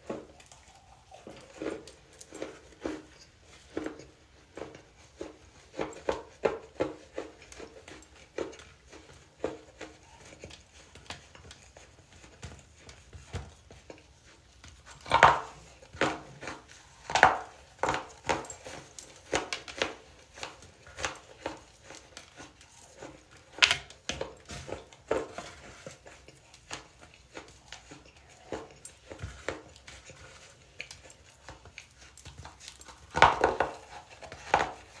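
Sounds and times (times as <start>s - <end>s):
chewing crunchy chunks: 0.0s - 35.0s.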